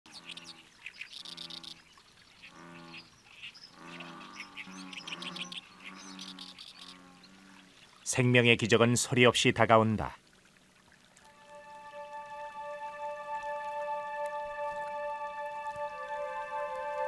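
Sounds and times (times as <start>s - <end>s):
high bird chirps: 0.1s - 7.1s
frogs croaking: 0.1s - 8.2s.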